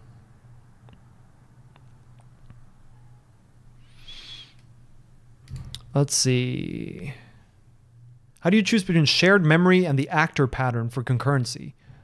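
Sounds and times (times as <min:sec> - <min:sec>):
low steady hum: 0:00.0 - 0:12.0
breath through nose whistling: 0:03.8 - 0:04.6.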